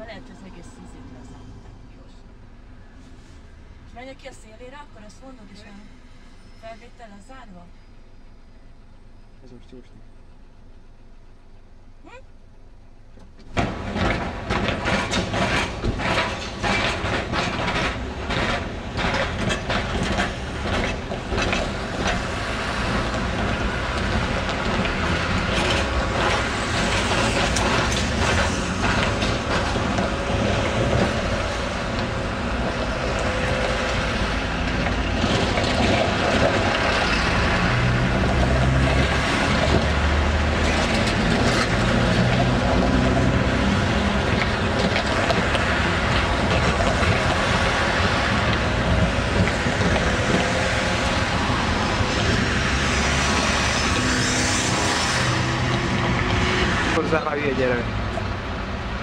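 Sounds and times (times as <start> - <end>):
trams rolling: 0.0 - 11.9, 12.6 - 59.0
cars driving past: 13.5 - 59.0.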